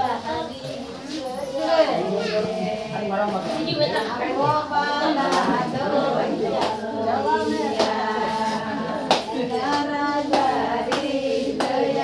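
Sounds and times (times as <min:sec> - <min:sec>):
group of people singing: 0:00.0 - 0:12.0
sharp claps: 0:09.0 - 0:11.9.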